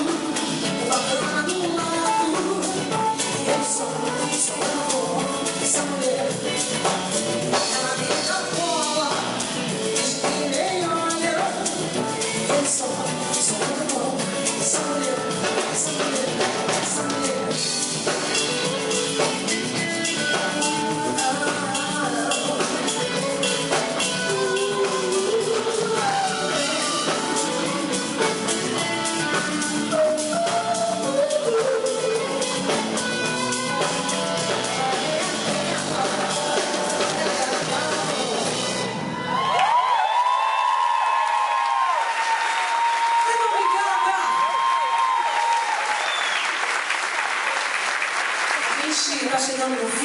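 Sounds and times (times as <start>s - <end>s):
drum kit and percussion beat: 0.0s - 50.0s
live band playing: 0.0s - 50.0s
audience applauding and cheering: 38.9s - 50.0s.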